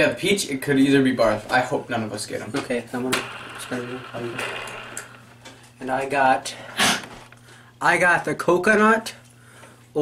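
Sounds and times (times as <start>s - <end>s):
person speaking: 1.2s - 7.1s
plastic game spinner clicking: 2.9s - 5.6s.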